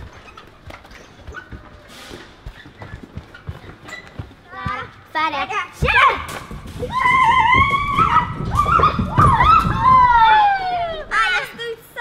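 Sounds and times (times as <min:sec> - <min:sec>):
children shrieking: 0:06.9 - 0:11.4.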